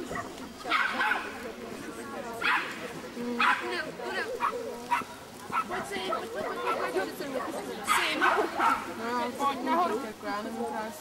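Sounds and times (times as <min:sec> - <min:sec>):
background chatter: 0:00.0 - 0:11.0
small dog barking: 0:00.1 - 0:01.3, 0:02.4 - 0:02.8, 0:03.4 - 0:03.7, 0:04.4 - 0:08.9.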